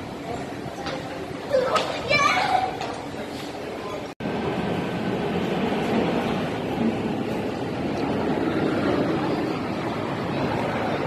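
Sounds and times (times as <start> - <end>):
large indoor hall background noise: 0.0 - 11.0.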